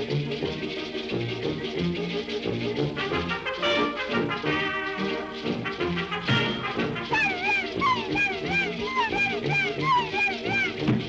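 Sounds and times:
orchestral cartoon music: 0:00.0 - 0:11.0
cartoon dolls crying wails: 0:07.1 - 0:10.8.

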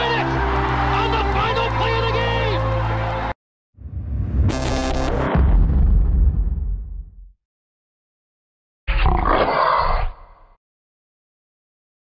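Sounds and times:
loud roar: 0:08.9 - 0:10.4.

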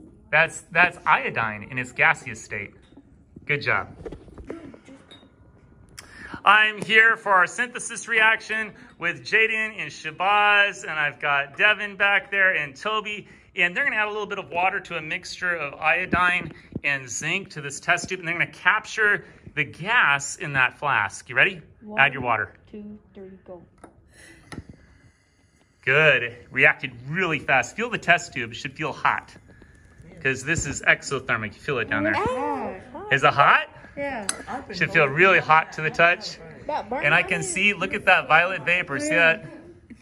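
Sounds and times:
glass clink: 0:05.0 - 0:05.4.

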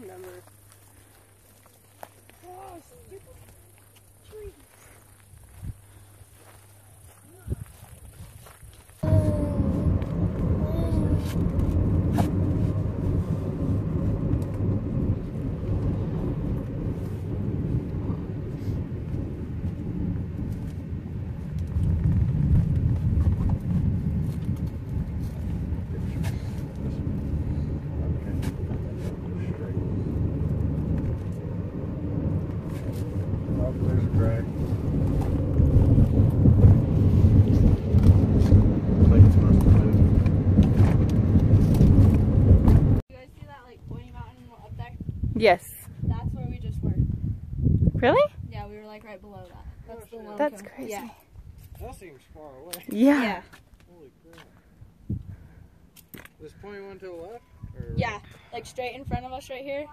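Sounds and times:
road and wind noise in car: 0:05.2 - 0:59.9.

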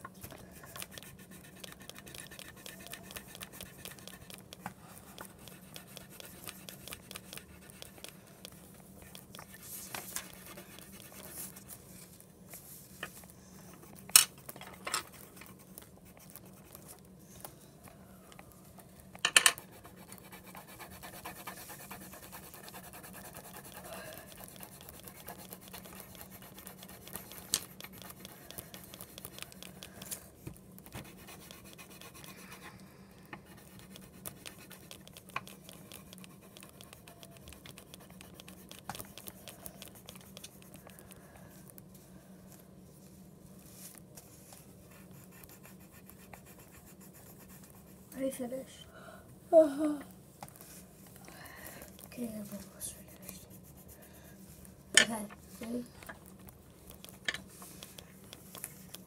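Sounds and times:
marker scratching on paper: 0:00.3 - 0:11.9, 0:15.1 - 0:17.0, 0:19.6 - 0:30.1, 0:30.8 - 0:32.7, 0:33.4 - 0:41.1, 0:44.3 - 0:48.2, 0:52.5 - 0:54.6.

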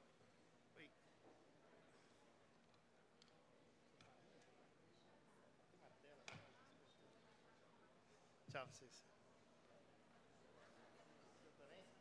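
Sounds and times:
faint murmur of a large hall: 0:00.0 - 0:12.0.

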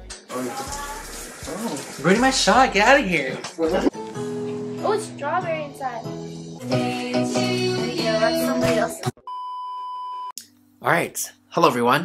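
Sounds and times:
electronic beep: 0:09.3 - 0:10.3.

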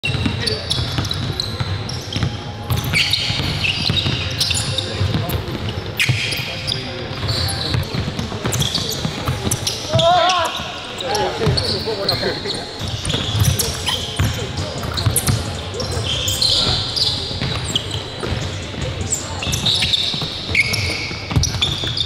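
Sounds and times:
sneakers squeaking: 0:00.0 - 0:22.0
players' voices: 0:00.1 - 0:22.0.

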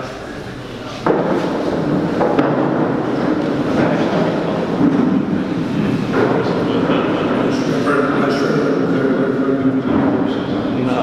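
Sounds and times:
large audience murmuring: 0:00.0 - 0:11.0.

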